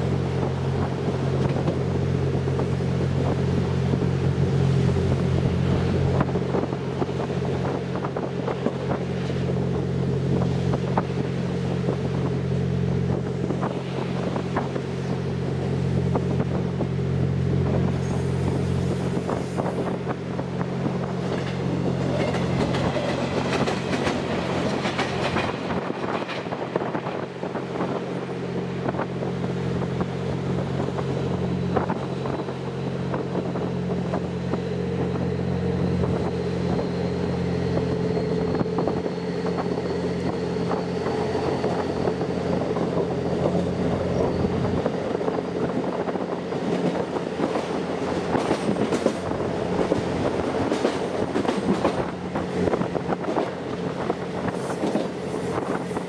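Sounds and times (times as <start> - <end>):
train engine hum: 0.0 - 56.0.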